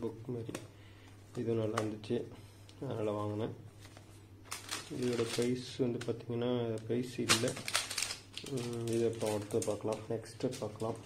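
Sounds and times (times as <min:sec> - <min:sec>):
person talking: 0:01.4 - 0:03.6, 0:04.8 - 0:07.7, 0:08.4 - 0:11.0
plastic wrapper crinkling: 0:03.8 - 0:11.0.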